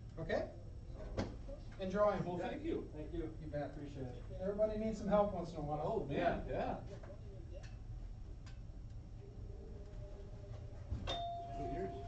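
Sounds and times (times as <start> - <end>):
door chime click: 11.1 - 12.0
door chime tone ringing: 11.1 - 12.0.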